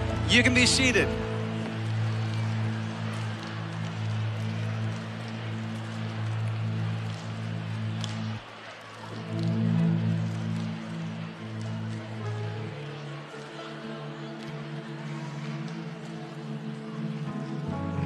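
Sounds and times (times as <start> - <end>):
congregation hubbub: 0.0 - 18.0
keyboard pad sustained chords: 0.0 - 18.0.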